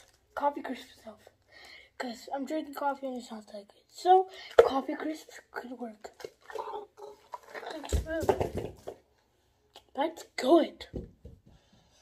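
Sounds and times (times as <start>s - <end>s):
boy's wordless vocal sounds: 0.4s - 8.3s.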